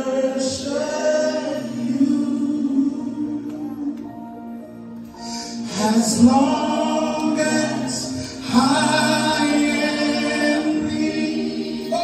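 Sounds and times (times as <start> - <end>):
choir singing: 0.0 - 4.0, 5.6 - 12.0.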